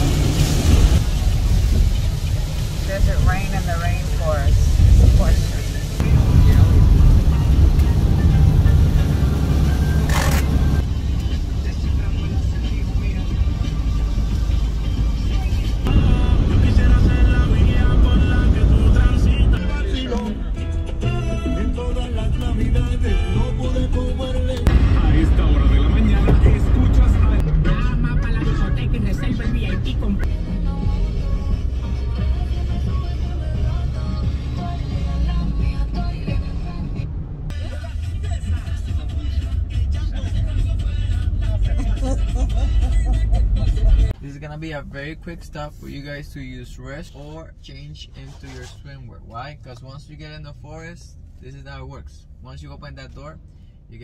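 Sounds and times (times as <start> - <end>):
music playing: 0.0 - 44.2
road and engine rumble in cabin: 0.0 - 54.0.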